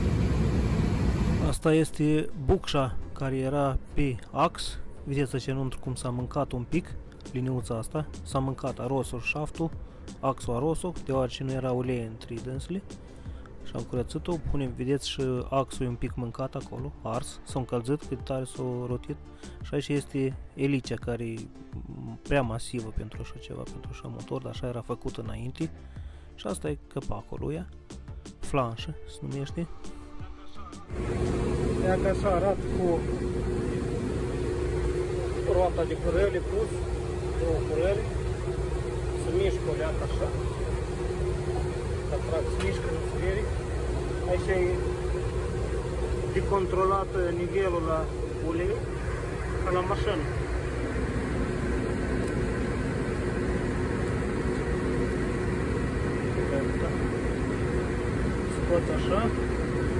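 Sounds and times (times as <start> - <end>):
steady mechanical hum: 0.0 - 17.2, 30.9 - 59.9
man speaking: 30.9 - 33.9, 39.1 - 40.7, 42.0 - 45.0, 46.2 - 48.9, 49.6 - 50.4, 58.4 - 59.5.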